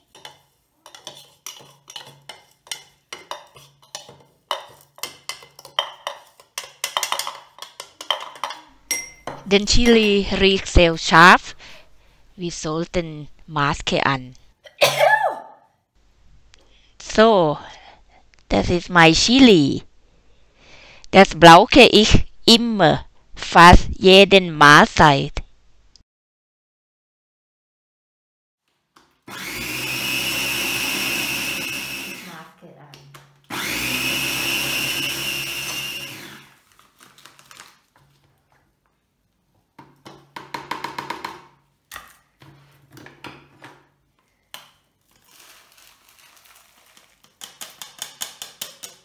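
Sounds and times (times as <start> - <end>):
person sneezing: 14.7 - 15.6
electric chopper motor grinding: 29.3 - 32.5, 33.5 - 36.6.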